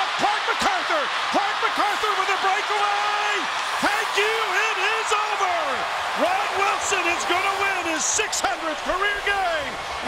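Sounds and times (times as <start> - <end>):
commentator excited voice: 0.0 - 9.8
arena crowd noise: 0.0 - 10.0.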